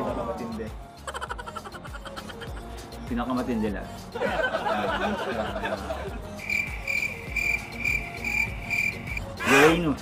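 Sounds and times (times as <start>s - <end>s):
background music with low beat: 0.0s - 10.0s
cricket chirping sound effect: 6.4s - 9.3s.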